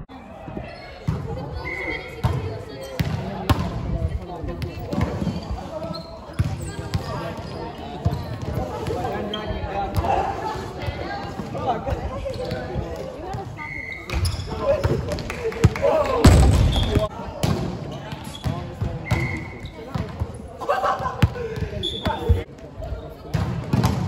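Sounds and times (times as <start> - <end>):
players' voices and shouts: 0.0 - 24.0
sneaker squeaks on wooden floor: 5.0 - 9.6, 12.3 - 12.7, 13.4 - 15.1, 17.9 - 20.2, 21.8 - 22.5.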